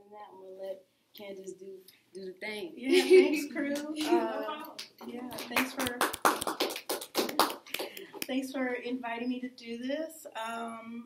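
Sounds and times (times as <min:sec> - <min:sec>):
small group clapping: 0:03.6 - 0:08.4.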